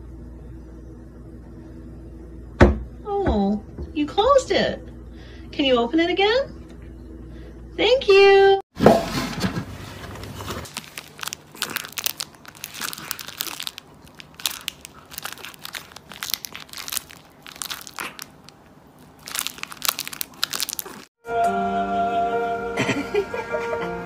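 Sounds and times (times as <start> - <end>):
crinkly plastic crackling: 10.1 - 21.1
music: 21.2 - 24.0.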